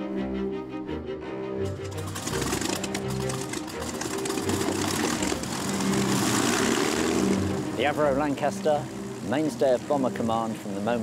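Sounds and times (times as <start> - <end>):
background music: 0.0 - 11.0
aircraft engines running: 1.2 - 11.0.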